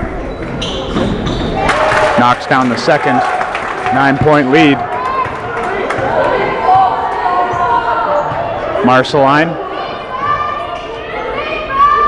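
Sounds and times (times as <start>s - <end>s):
echoing hum of voices: 0.0s - 12.0s.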